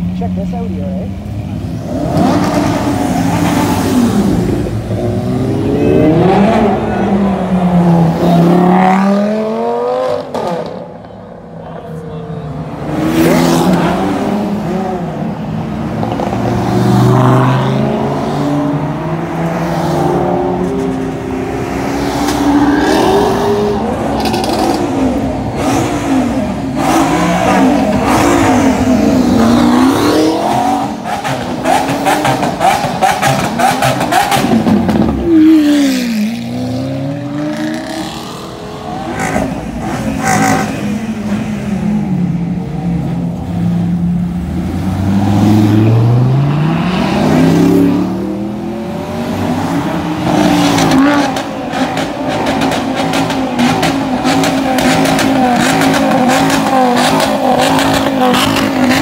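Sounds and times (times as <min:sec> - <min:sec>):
car engines revving: 0:00.0 - 0:59.0.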